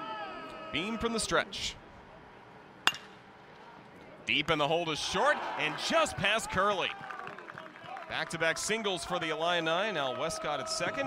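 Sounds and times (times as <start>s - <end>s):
metal bat hitting baseball: 2.8s - 3.2s.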